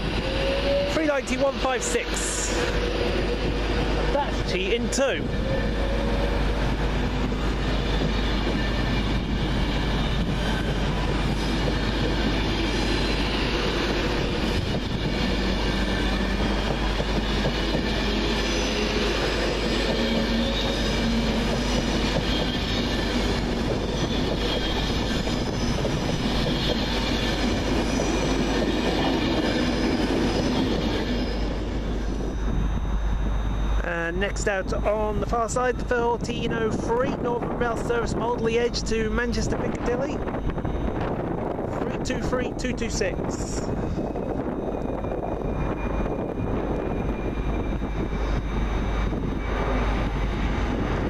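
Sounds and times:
thin whining tones: 0.0 - 37.1, 42.4 - 51.0
train wheels rumbling: 0.0 - 51.0.

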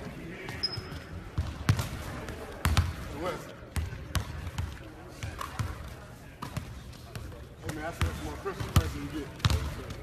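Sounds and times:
basketballs bouncing on hardwood floor: 0.5 - 3.1, 3.7 - 10.0.

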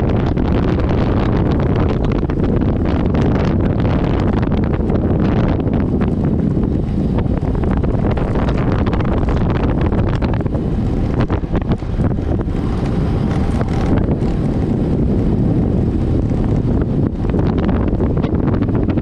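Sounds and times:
bike tyres rattling over asphalt: 0.0 - 19.0
wind buffeting microphone: 0.0 - 19.0.

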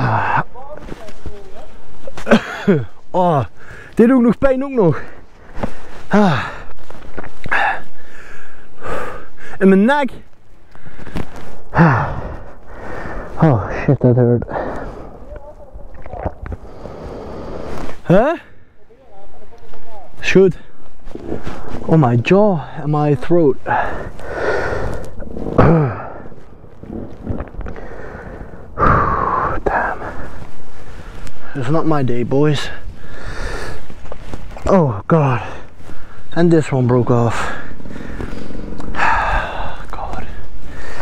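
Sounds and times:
man groaning in pain: 6.1 - 6.6, 11.7 - 12.3, 25.6 - 26.3
heavy breathing: 7.4 - 9.6, 10.6 - 15.4, 16.5 - 18.8, 23.6 - 31.5, 32.8 - 34.3, 37.1 - 41.0.

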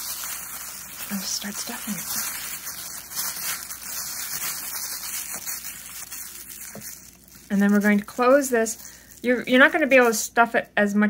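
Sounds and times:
plastic bag crinkling: 0.0 - 10.7.

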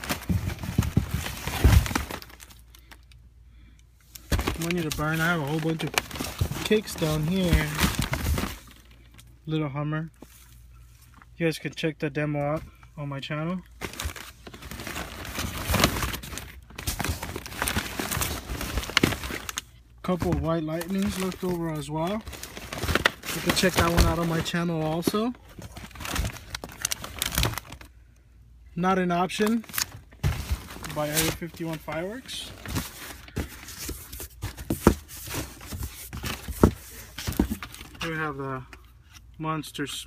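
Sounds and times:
cardboard rustling and scraping: 0.0 - 2.5, 4.2 - 8.8, 13.8 - 27.8, 29.7 - 38.0.

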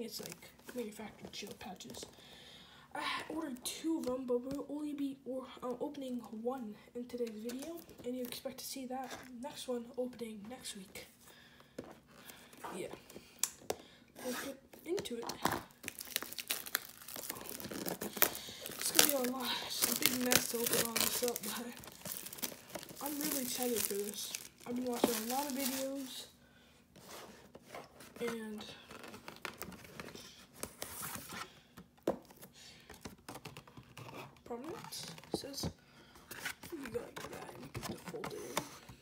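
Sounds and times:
plastic shrink wrap crinkling: 7.2 - 8.4, 14.9 - 26.4, 27.9 - 31.3
cardboard card stock rustling: 14.2 - 26.3.

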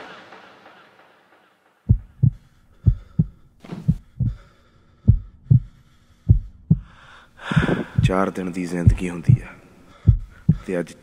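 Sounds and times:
heartbeat thumps: 1.8 - 10.7.

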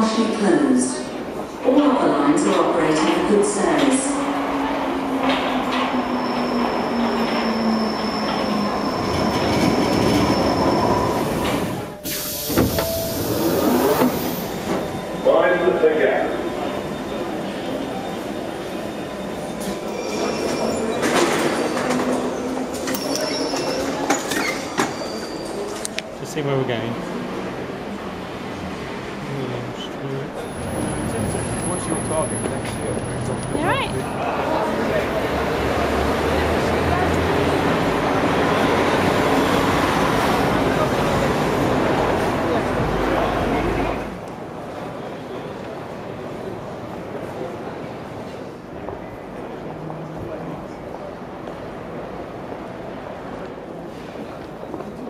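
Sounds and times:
traffic: 0.0 - 55.0
underground train running: 0.0 - 55.0
many people talking: 14.5 - 55.0.

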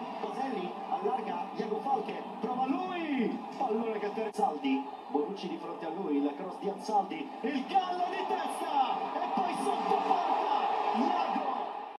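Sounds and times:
stadium crowd voices: 0.0 - 12.0.

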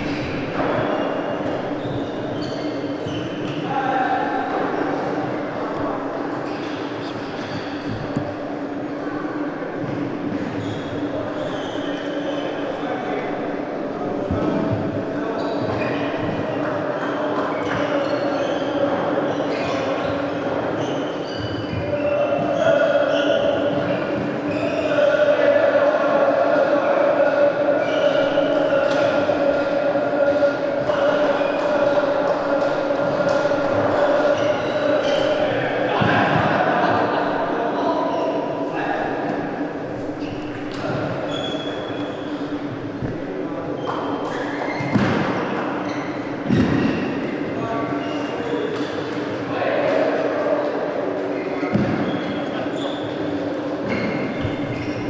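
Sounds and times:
indistinct voices: 0.0 - 55.0.

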